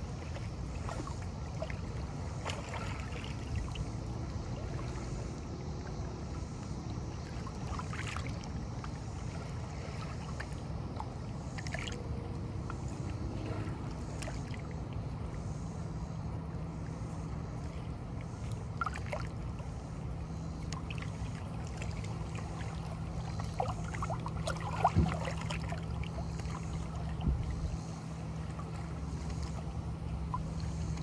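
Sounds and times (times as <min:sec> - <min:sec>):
water lapping against rocks: 0:20.7 - 0:27.7.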